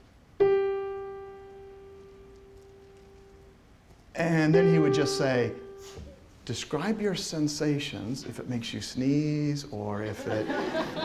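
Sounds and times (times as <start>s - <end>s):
piano note ringing: 0.0s - 6.4s.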